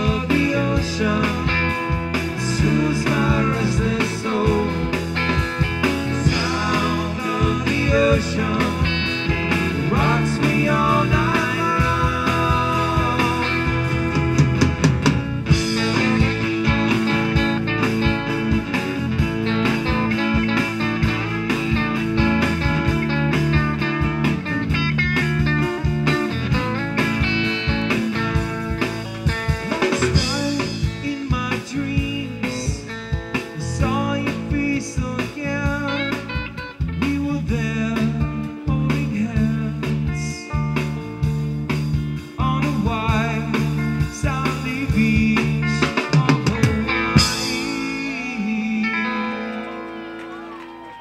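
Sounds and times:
acoustic guitar: 0:00.0 - 0:51.0
bass guitar: 0:00.0 - 0:51.0
electric guitar lead: 0:00.0 - 0:51.0.

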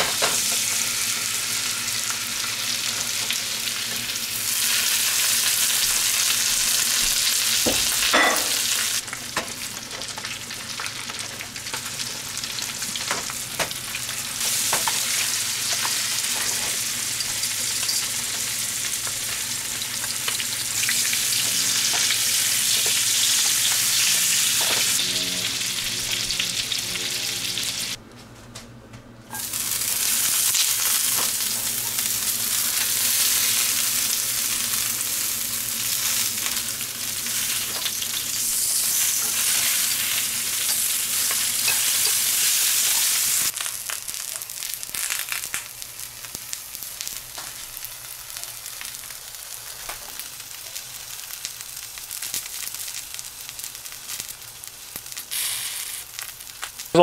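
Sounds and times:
fish sizzling in a pan: 0:00.0 - 0:28.0, 0:29.3 - 0:57.0.

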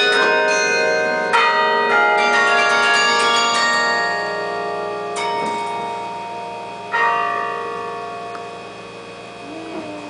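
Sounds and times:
carillon bells ringing: 0:00.0 - 0:09.7.

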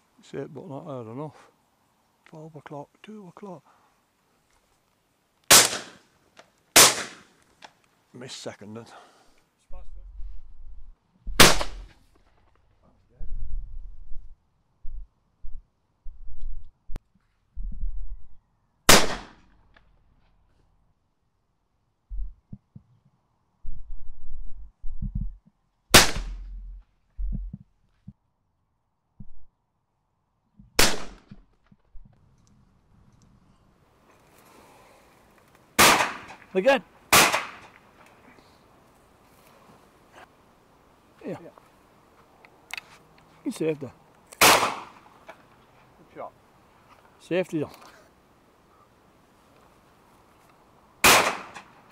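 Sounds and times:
shotgun shot: 0:05.5 - 0:06.0, 0:06.8 - 0:07.3, 0:11.3 - 0:11.9, 0:18.9 - 0:19.4, 0:25.9 - 0:26.5, 0:30.8 - 0:31.3, 0:35.8 - 0:36.4, 0:37.1 - 0:37.7, 0:44.4 - 0:45.0, 0:51.0 - 0:51.7
low rumbles: 0:22.1 - 0:22.9, 0:23.6 - 0:28.2.

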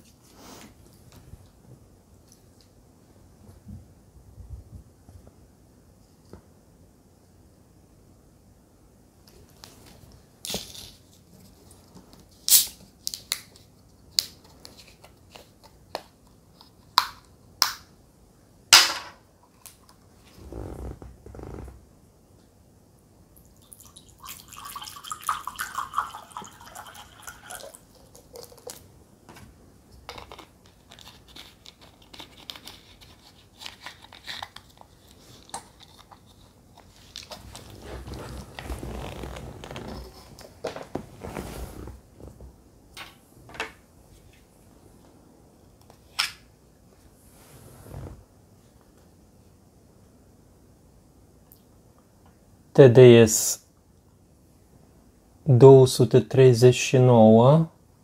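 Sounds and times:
water pouring into ceramic cup: 0:23.6 - 0:28.6.

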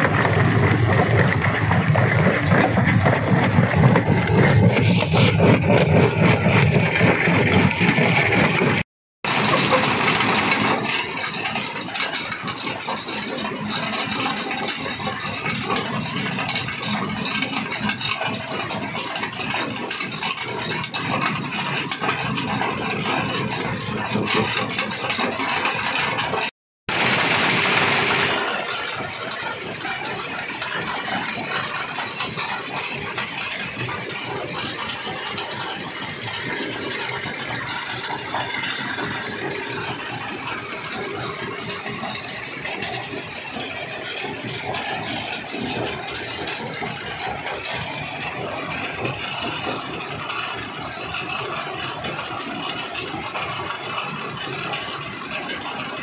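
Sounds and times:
engine drone: 0:00.0 - 0:56.0
stone rattling through crusher: 0:00.0 - 0:56.0.

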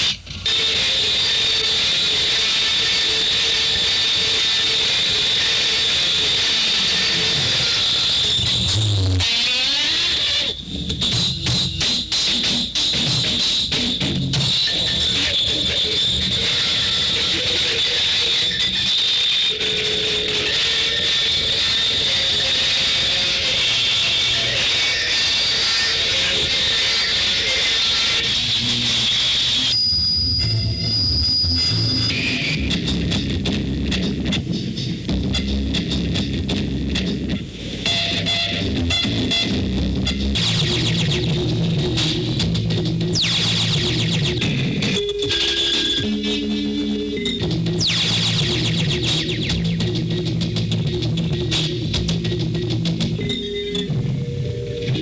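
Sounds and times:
high held whine: 0:13.6 - 0:55.0.

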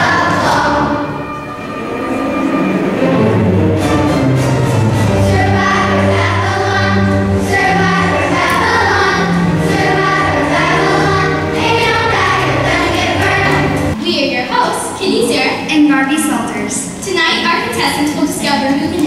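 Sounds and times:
children's choir singing: 0:00.0 - 0:14.0
instrumental accompaniment: 0:00.0 - 0:14.0.

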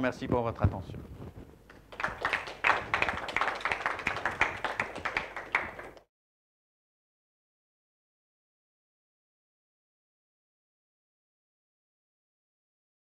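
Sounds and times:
audience applauding: 0:01.8 - 0:06.1.

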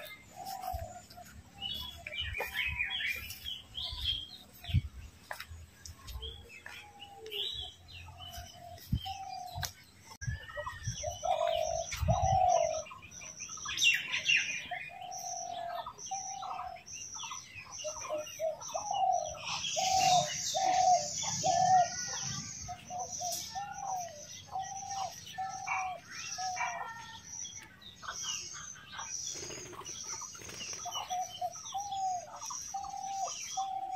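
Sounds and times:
birds calling: 0:00.0 - 0:33.9
high bird chirps: 0:29.3 - 0:33.9.

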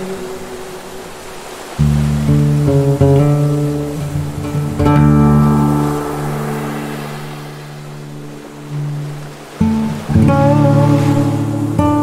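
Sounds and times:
ocean surf: 0:00.0 - 0:12.0
slow acoustic guitar music: 0:00.0 - 0:12.0.

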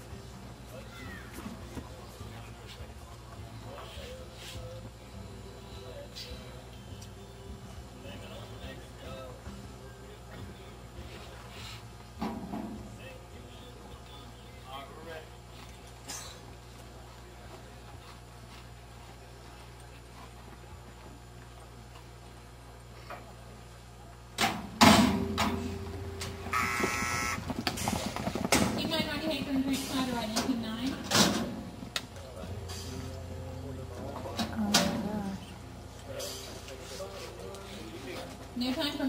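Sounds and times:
steady low hum: 0:00.0 - 0:39.0
loud metal clang: 0:24.4 - 0:25.8
voices calling out: 0:25.6 - 0:27.5.

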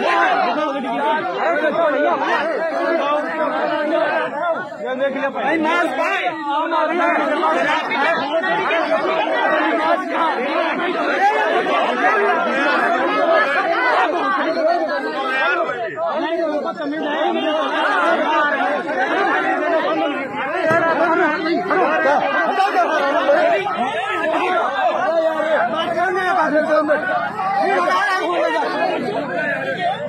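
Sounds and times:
overlapping chatter: 0:00.0 - 0:30.0.

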